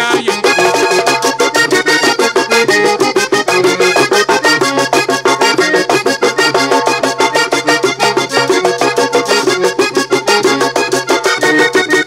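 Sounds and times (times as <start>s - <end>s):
bass line: 0.0s - 12.0s
button accordion: 0.0s - 12.0s
quick percussion beat: 0.0s - 12.0s.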